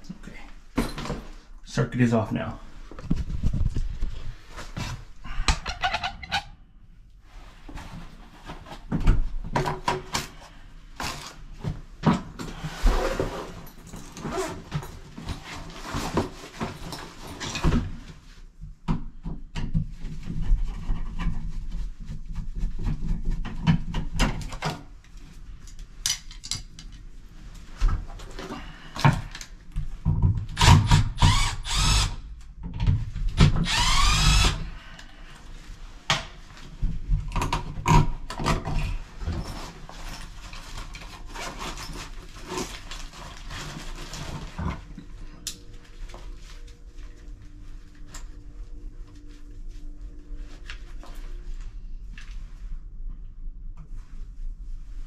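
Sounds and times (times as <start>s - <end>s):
cordless drill running: 30.6s - 32.2s, 33.6s - 34.7s.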